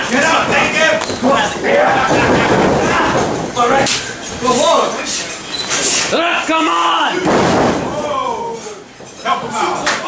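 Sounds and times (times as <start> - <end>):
people shouting and yelling: 0.0 - 4.9, 6.1 - 10.0.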